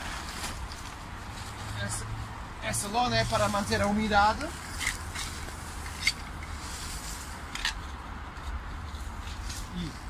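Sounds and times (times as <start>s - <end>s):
rustling of straw and compost: 0.0s - 10.0s.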